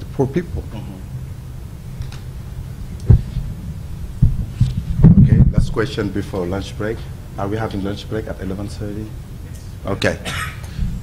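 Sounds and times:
low steady hum: 0.0 - 11.0
microphone handling thumps: 2.9 - 5.9.

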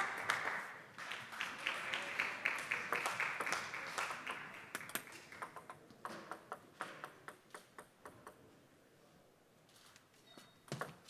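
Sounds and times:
spectator applause: 0.0 - 5.6
table tennis ball bouncing: 4.9 - 8.5, 10.7 - 11.0.

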